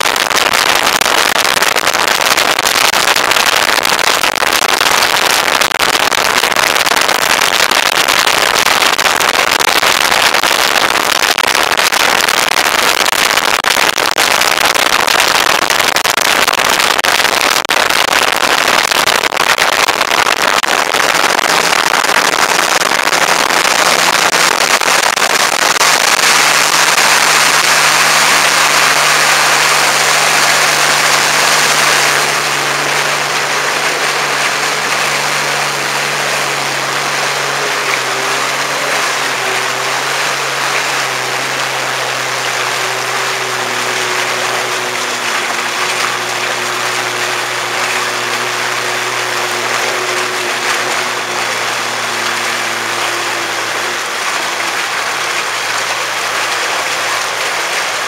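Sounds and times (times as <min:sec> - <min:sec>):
watercraft engine and jet drone: 0:00.0 - 0:58.0.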